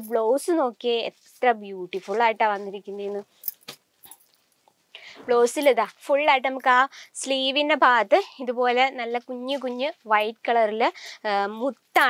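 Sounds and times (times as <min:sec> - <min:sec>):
woman's voice: 0:00.0 - 0:03.2, 0:05.1 - 0:12.0
silk fabric rustling: 0:00.2 - 0:04.6.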